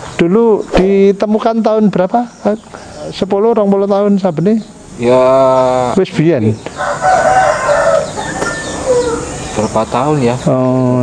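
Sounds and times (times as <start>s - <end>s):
rooster crowing: 6.7s - 9.8s.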